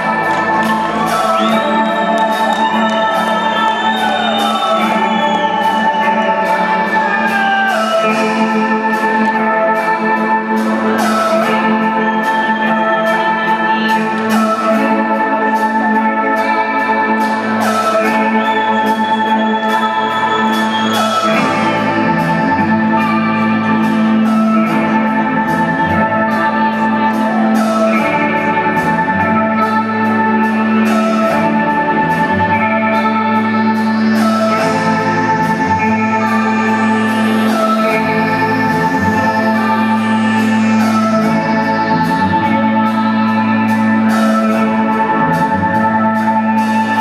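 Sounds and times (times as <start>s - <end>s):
gliding lead tone: 0.0s - 47.0s
rock band playing instrumental: 0.0s - 47.0s
sustained keyboard chords: 0.0s - 47.0s.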